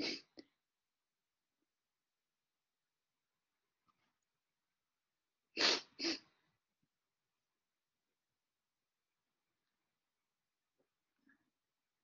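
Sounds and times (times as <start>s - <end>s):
person sneezing: 0.0s - 0.4s, 5.6s - 6.4s.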